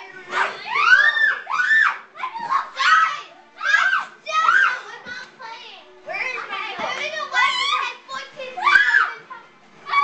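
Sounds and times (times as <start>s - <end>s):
children shouting in play: 0.0s - 5.1s, 6.1s - 10.0s.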